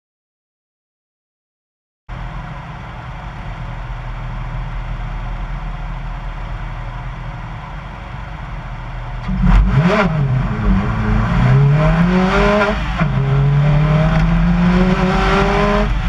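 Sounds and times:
rally car engine idling and revving: 2.1s - 16.0s.

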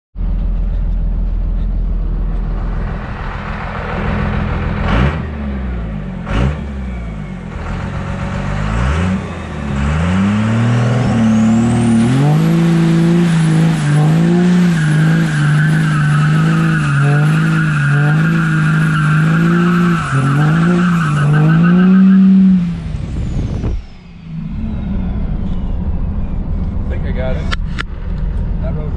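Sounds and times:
diesel engine revving: 0.2s - 28.9s
turbo whistle: 19.0s - 22.6s.

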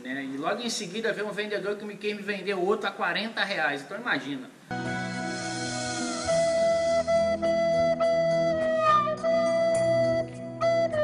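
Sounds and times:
low accompaniment: 4.7s - 11.0s
flute playing a tune: 4.8s - 11.0s.

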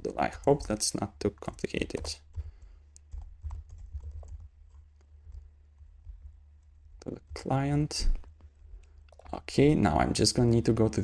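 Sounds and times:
computer keyboard typing: 0.2s - 7.5s, 8.8s - 9.4s.

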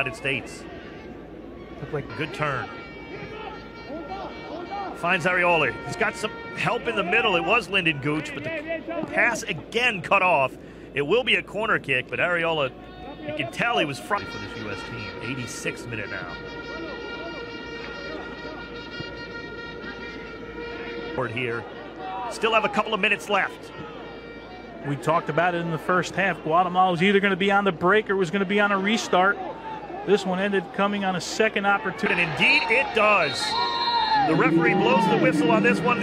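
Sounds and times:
stadium crowd: 0.0s - 36.0s
voices shouting: 31.8s - 36.0s
crowd murmur: 33.2s - 36.0s
steady horn note: 34.2s - 36.0s.

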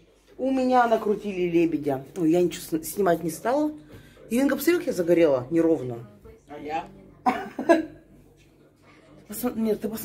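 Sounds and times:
woman coughing: 7.2s - 7.9s.

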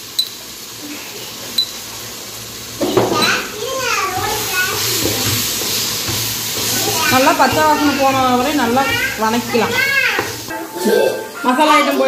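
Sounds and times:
child calling out: 3.2s - 4.9s, 9.6s - 10.3s
spatula clinking metal pot: 5.0s - 10.6s.

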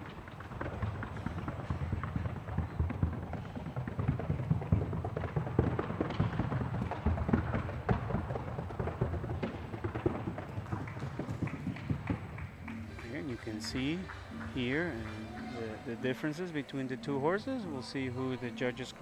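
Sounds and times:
rapid horse hoofbeats: 0.0s - 19.0s.

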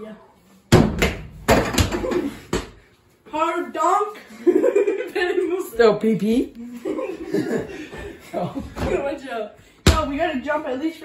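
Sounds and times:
ball slammed through toy hoop: 0.7s - 2.8s.

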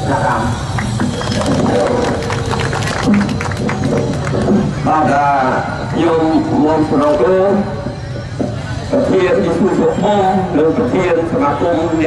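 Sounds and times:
music with percussive hits: 0.3s - 5.9s.

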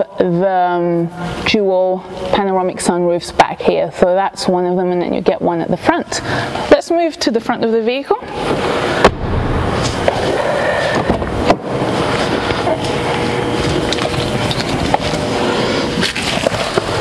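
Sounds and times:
sharp knock: 9.0s - 10.2s.

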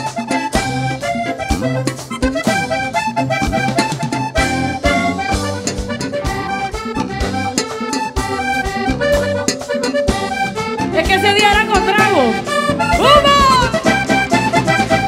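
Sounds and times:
button accordion melody: 0.0s - 15.0s
drum and hand-drum beats: 0.0s - 15.0s
electric bass: 0.0s - 15.0s.

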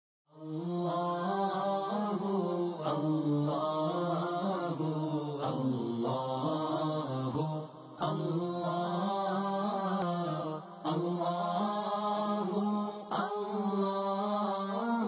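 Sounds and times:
devotional chanting: 0.3s - 15.0s.

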